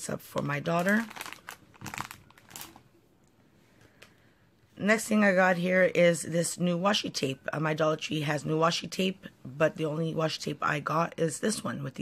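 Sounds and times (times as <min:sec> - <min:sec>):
candy packaging crinkling: 0:00.1 - 0:03.0.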